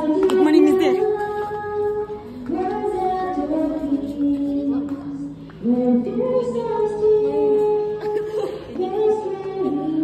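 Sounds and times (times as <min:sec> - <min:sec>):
music: 0:00.0 - 0:10.0
woman singing slow melody: 0:00.0 - 0:10.0.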